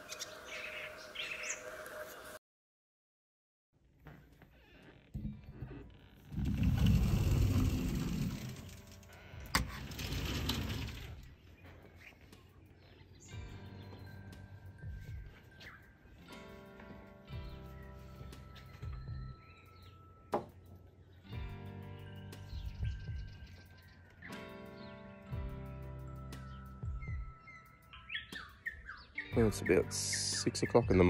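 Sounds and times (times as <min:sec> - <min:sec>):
birds calling: 0:00.0 - 0:02.4, 0:11.2 - 0:16.6, 0:17.3 - 0:25.2, 0:26.3 - 0:31.0
sliding door rollers rumbling: 0:05.2 - 0:11.3
background music: 0:06.8 - 0:31.0.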